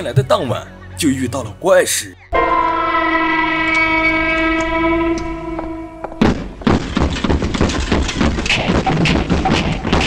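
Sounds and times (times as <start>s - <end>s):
sustained horn-like drone: 2.4s - 6.2s.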